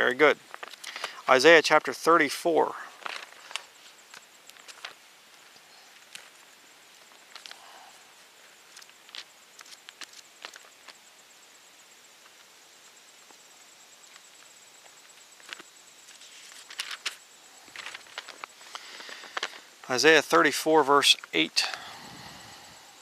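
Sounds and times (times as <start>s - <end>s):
paper pages rustling: 3.0s - 5.4s, 8.7s - 11.0s, 15.4s - 19.6s.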